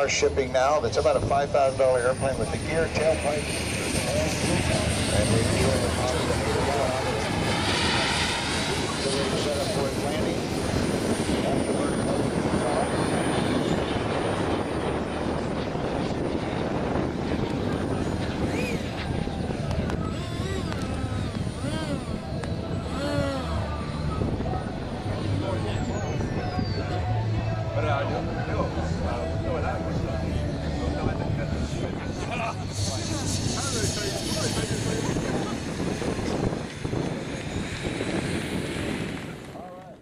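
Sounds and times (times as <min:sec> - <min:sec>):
model jet turbine rushing: 0:00.0 - 0:26.7, 0:28.6 - 0:40.0.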